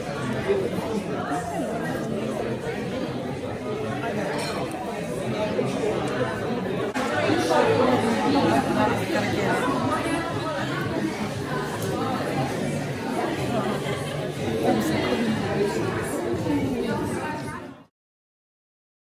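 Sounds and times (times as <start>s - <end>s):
overlapping chatter of many people: 0.0s - 17.9s.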